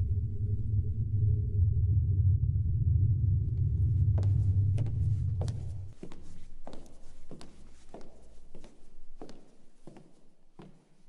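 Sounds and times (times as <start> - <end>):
steady low rumble: 0.0 - 7.2
footsteps on wooden floor: 4.2 - 11.0.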